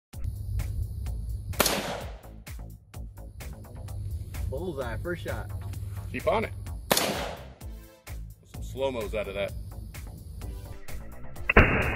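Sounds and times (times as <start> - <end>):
electronic music with steady beat: 0.2 - 6.8, 7.6 - 11.9
rifle shot: 1.6 - 2.3, 6.9 - 7.5, 11.5 - 11.9.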